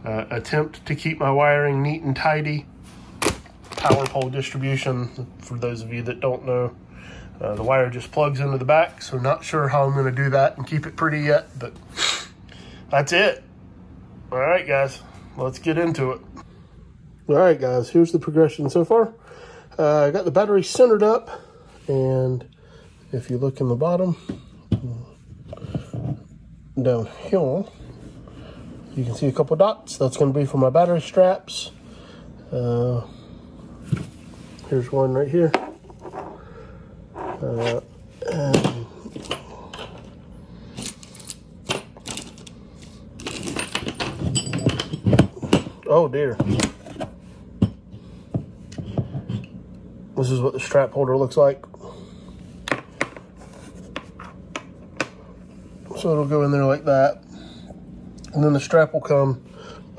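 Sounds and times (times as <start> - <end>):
soft rubbing and scraping: 33.6 - 36.4, 37.1 - 38.2, 53.3 - 54.4
man speaking: 37.2 - 39.0.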